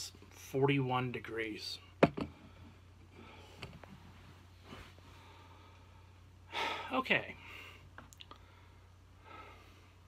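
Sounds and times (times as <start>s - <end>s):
steady low hum: 0.0s - 10.0s
can knocking on a table: 2.0s - 2.3s.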